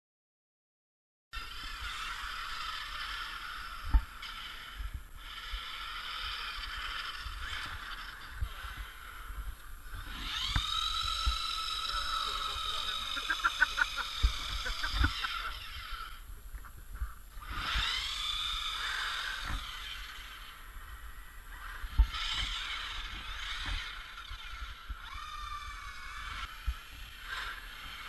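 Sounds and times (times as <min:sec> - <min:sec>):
toy truck electric motors whining: 0:01.4 - 0:28.0
quick run of clicks: 0:09.6 - 0:20.6.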